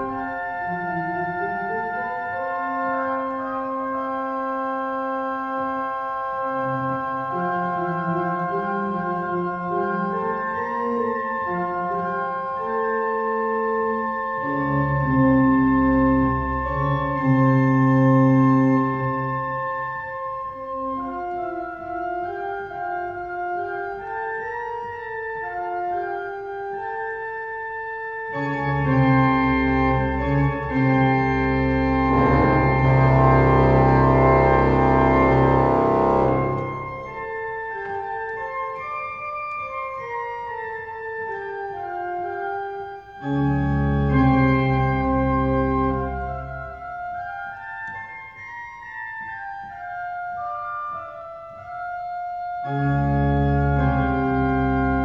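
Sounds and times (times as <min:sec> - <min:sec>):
deep organ pedal bass: 0:00.0 - 0:24.7, 0:28.2 - 0:38.5, 0:43.2 - 0:47.5, 0:51.7 - 0:55.0
church organ chords: 0:00.0 - 0:55.0.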